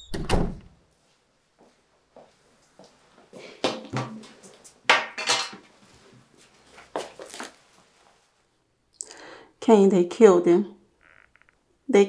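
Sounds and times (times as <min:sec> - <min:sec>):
crockery clattering on glass: 0:04.9 - 0:05.6.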